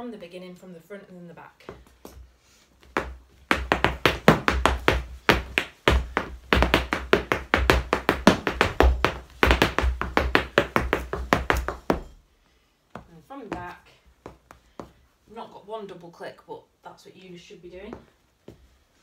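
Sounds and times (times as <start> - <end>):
hard shoes tapping on floor: 2.8 - 12.2, 12.9 - 15.0.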